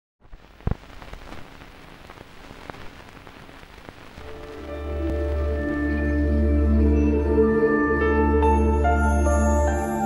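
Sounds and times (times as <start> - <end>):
vinyl record crackling hiss: 0.2 - 7.0.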